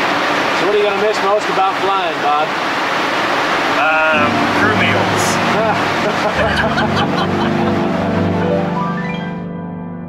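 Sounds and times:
voices: 0:03.7 - 0:06.0
music with long held notes: 0:04.1 - 0:10.0.

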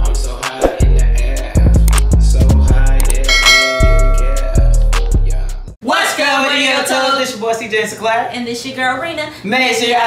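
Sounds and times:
hip-hop music with heavy bass beat: 0:00.0 - 0:05.8
notification bell ding: 0:03.3 - 0:04.4.

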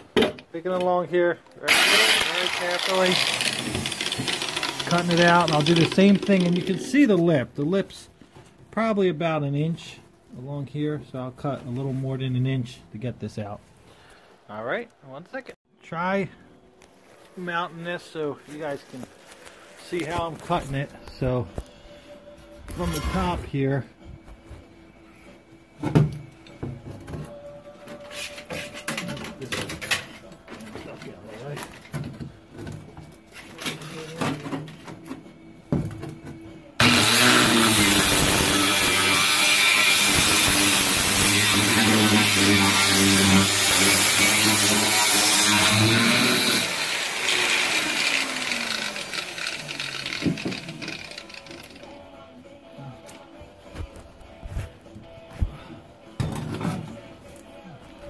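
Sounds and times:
angle grinder cutting sheet steel: 0:01.7 - 0:06.8, 0:36.8 - 0:51.7.

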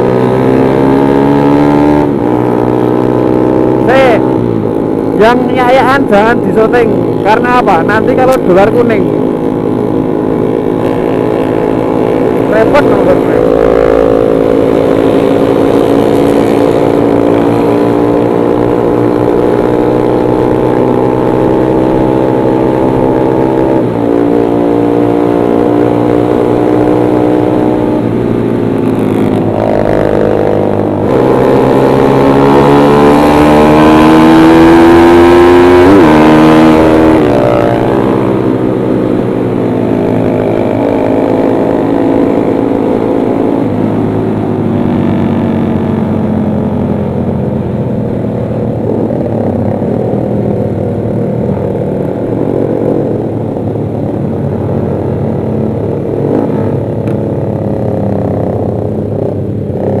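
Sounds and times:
motorcycle engine revving: 0:00.0 - 1:00.0.

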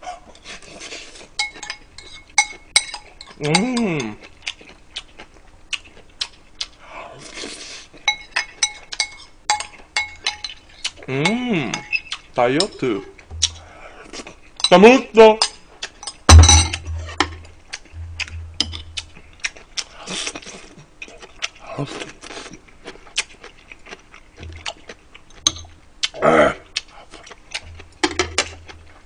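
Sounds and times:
spoon clinking on ceramic bowl: 0:08.1 - 0:10.6.

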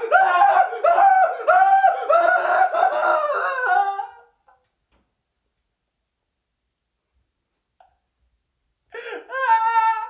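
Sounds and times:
young man shrieking: 0:00.0 - 0:04.3, 0:09.0 - 0:10.0.

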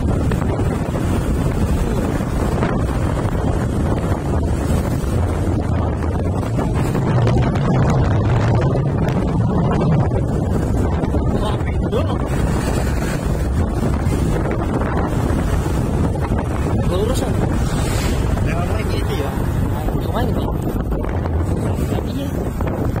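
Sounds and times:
vehicle engine: 0:00.0 - 0:23.0
wind buffeting microphone: 0:00.0 - 0:23.0.

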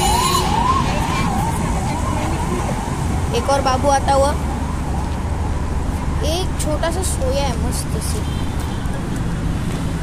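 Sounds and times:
emergency vehicle siren: 0:00.0 - 0:05.8
road traffic rumble: 0:00.0 - 0:10.0.

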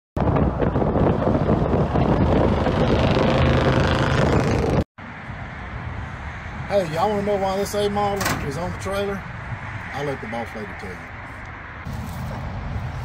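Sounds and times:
wind on microphone: 0:00.2 - 0:04.8, 0:11.5 - 0:13.0
loud vehicle noise: 0:00.2 - 0:13.0
outdoor background noise: 0:00.2 - 0:13.0.

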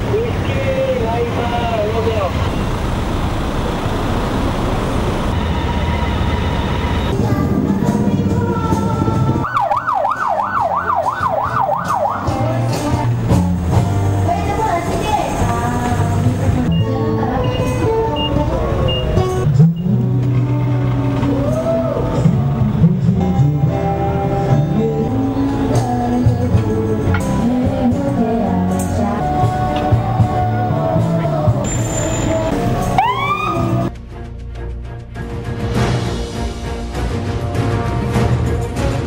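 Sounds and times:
passing cars rumbling: 0:00.0 - 0:33.9
background music: 0:06.9 - 0:39.0.

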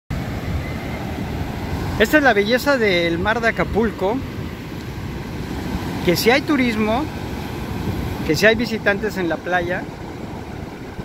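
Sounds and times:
ocean surf breaking: 0:00.1 - 0:11.0
wind on microphone: 0:00.1 - 0:11.0.

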